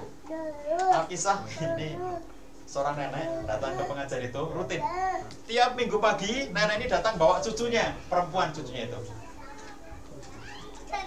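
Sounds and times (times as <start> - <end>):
faint children's voices: 3.3 - 5.4, 8.9 - 11.0.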